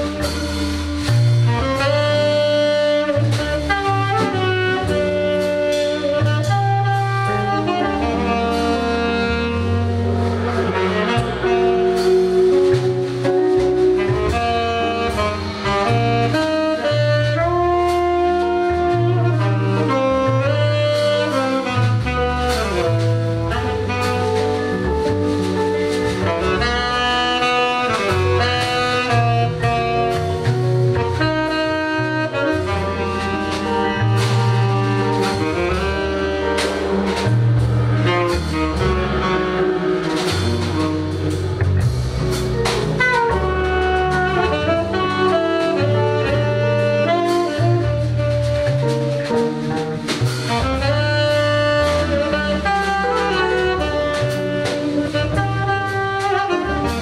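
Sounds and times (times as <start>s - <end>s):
double bass: 0.0s - 57.0s
drum kit with ride cymbal: 0.0s - 57.0s
tenor saxophone melody: 0.0s - 57.0s.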